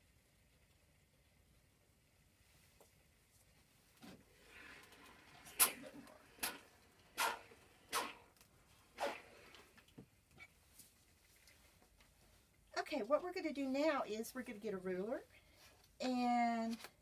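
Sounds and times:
short sharp iron sounds: 5.5 - 8.3, 9.0 - 9.4
faint fabric rustling: 8.6 - 17.0.

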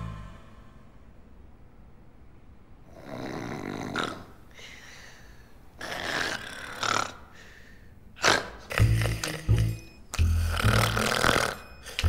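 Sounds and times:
men snoring: 2.9 - 4.3, 10.3 - 12.0.

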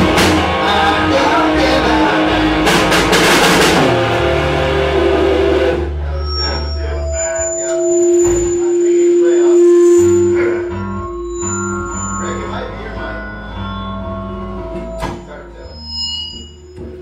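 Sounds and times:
rock band playing: 0.0 - 16.0
ringing electric guitar notes: 0.0 - 17.0.

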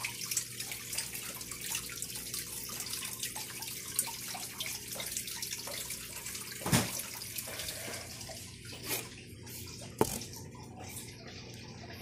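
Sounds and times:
water trickling and splashing: 0.0 - 12.0.

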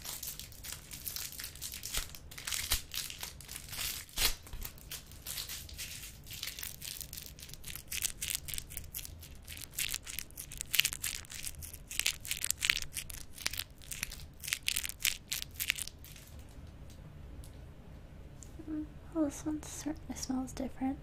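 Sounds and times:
wrapper crinkling: 0.0 - 16.6.

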